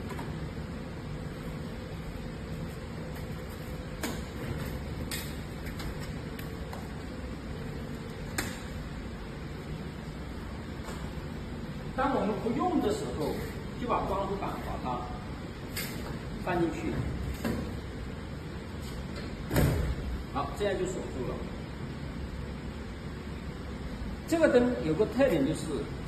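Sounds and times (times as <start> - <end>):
steady hum: 0.0 - 26.0.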